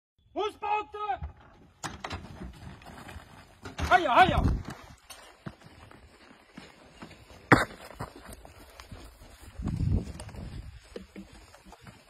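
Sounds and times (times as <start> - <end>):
man shouting sharp calls: 0.3 - 1.3
footsteps on gravel: 2.2 - 12.0.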